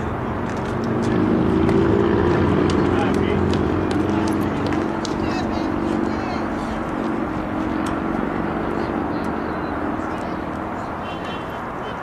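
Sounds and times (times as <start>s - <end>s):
indistinct voices: 0.0s - 12.0s.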